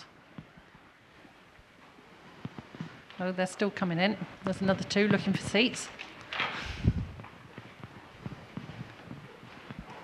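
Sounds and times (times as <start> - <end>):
soft knocks and shuffles: 0.3 - 10.0.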